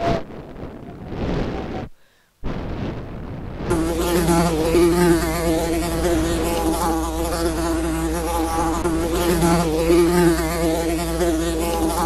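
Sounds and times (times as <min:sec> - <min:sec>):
wind on microphone: 0:00.0 - 0:07.7
mosquitoes buzzing: 0:03.7 - 0:12.0.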